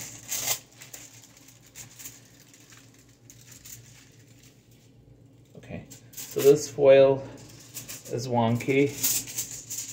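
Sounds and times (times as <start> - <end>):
foil crinkling and rustling: 0.0 - 9.9
steady low hum: 0.0 - 9.9.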